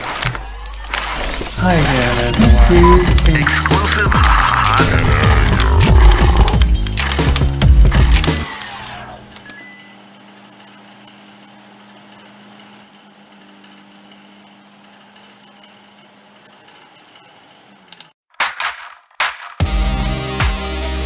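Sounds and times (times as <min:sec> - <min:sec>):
rapid mechanical knocks: 0:00.0 - 0:19.4.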